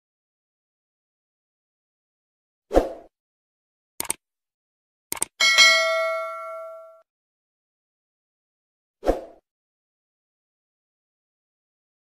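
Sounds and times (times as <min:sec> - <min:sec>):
double mouse click: 0:04.0 - 0:04.2, 0:05.1 - 0:05.3
notification bell ding: 0:05.4 - 0:07.0.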